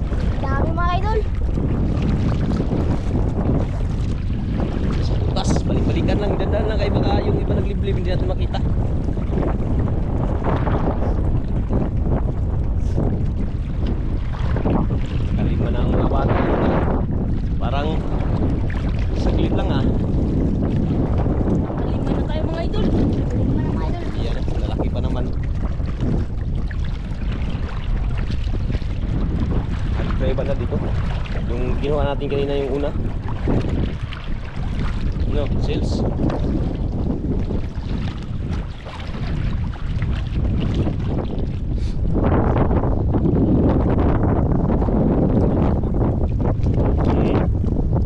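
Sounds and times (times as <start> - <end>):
water sloshing around wading legs: 0.0 - 6.0, 9.0 - 15.8, 17.4 - 42.2
wind buffeting microphone: 0.0 - 48.0.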